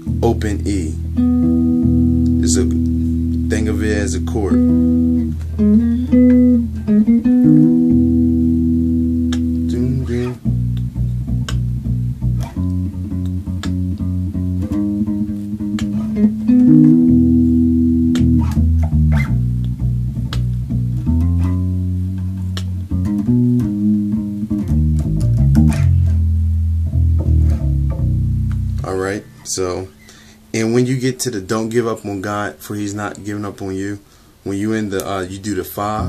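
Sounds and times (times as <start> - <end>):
electric bass guitar playing: 0.0 - 31.0, 35.1 - 36.0.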